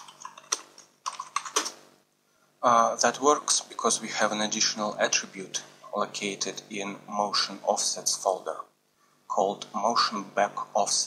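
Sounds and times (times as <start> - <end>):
computer keyboard typing: 0.0 - 1.8.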